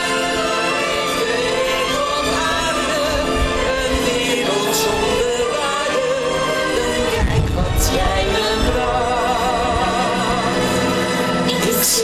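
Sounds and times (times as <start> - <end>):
musical theatre singing with vibrato: 0.0 - 12.0
orchestral backing music: 0.0 - 12.0.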